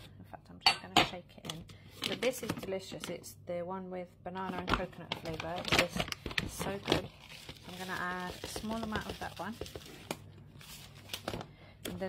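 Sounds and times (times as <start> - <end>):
packet crinkling: 5.0 - 11.6.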